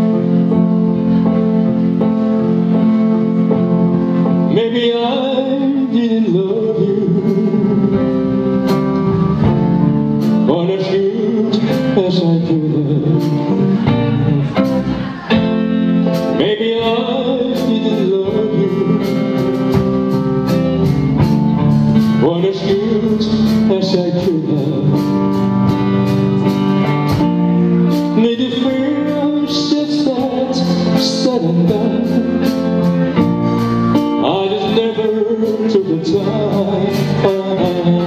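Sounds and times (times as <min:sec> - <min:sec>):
live band playing: 0:00.0 - 0:38.0
man singing lead vocal: 0:03.7 - 0:08.6, 0:10.2 - 0:20.6, 0:22.0 - 0:25.6, 0:27.8 - 0:38.0.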